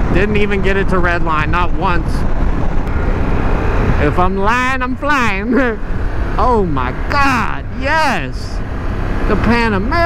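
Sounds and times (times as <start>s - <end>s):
motorcycle engine rumble: 0.0s - 10.0s
wind and road noise: 0.0s - 10.0s.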